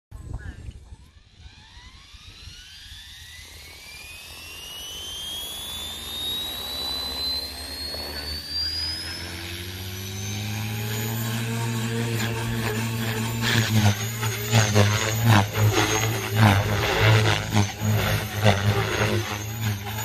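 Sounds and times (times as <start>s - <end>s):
electric motor whine: 0.2s - 20.0s
low rotor hum: 0.2s - 20.0s.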